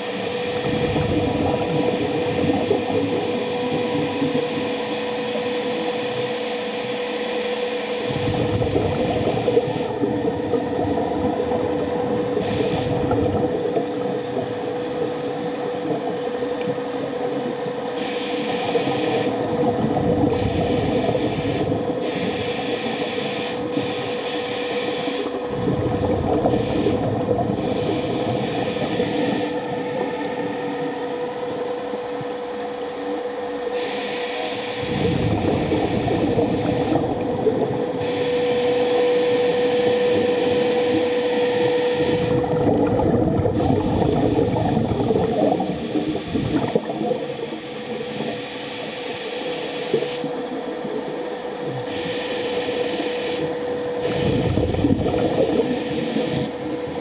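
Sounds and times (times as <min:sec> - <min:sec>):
underwater motor whine: 0:00.0 - 0:57.0
churning water rush: 0:07.9 - 0:32.2, 0:33.2 - 0:57.0.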